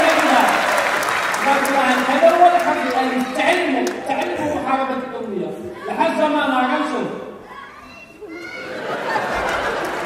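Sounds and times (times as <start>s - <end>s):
indistinct voices in hall: 0.0s - 10.0s
child's high voice: 5.7s - 6.2s, 7.4s - 8.8s.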